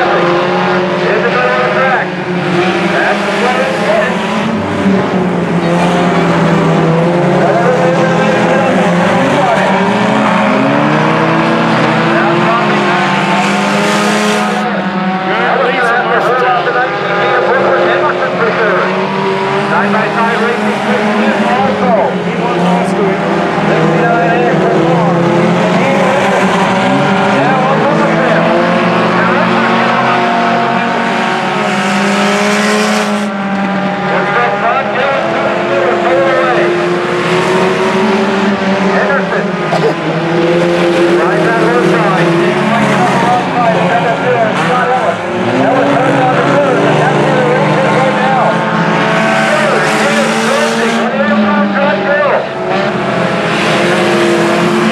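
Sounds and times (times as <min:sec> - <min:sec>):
race car engines: 0:00.0 - 0:54.9.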